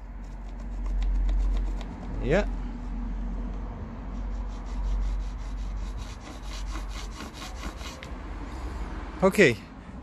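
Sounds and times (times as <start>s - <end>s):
pencil scratching on board: 0.2s - 2.2s, 4.1s - 8.1s.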